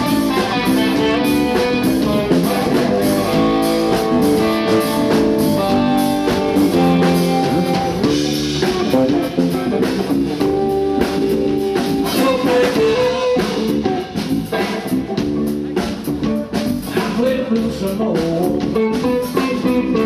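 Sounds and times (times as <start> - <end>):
bass guitar: 0.0 - 20.0
electric guitar picking: 0.0 - 20.0
steady drum beat: 0.0 - 20.0.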